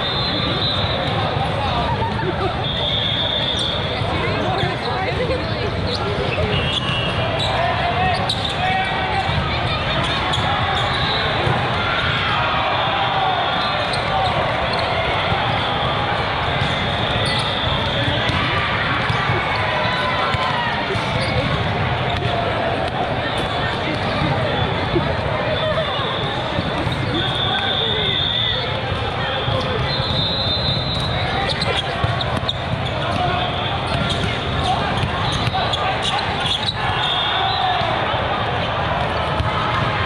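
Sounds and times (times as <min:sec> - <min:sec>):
shrill whistle blasts: 0:00.0 - 0:01.1, 0:02.6 - 0:03.8, 0:27.2 - 0:28.8, 0:29.5 - 0:31.4, 0:36.4 - 0:37.8
people talking and calling out: 0:00.0 - 0:40.0
balls struck and bouncing: 0:17.5 - 0:24.4, 0:31.7 - 0:35.8, 0:39.0 - 0:40.0.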